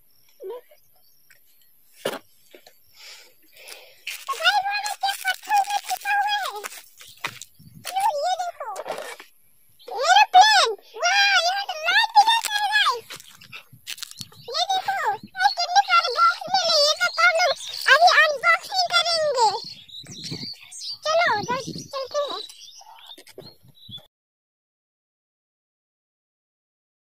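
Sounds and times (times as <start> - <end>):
child's high-pitched voice: 0.4 - 0.8, 3.6 - 9.2, 9.9 - 23.5.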